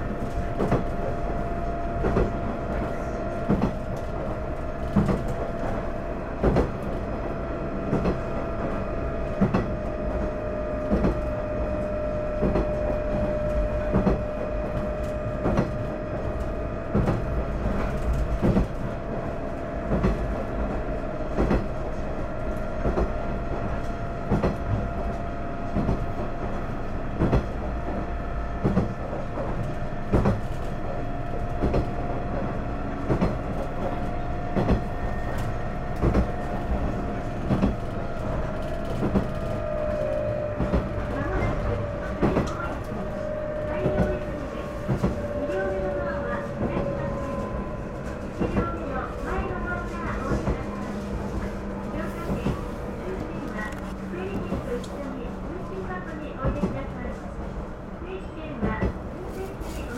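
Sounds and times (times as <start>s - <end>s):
train rumble: 0.0s - 59.9s
train whine: 0.0s - 59.9s.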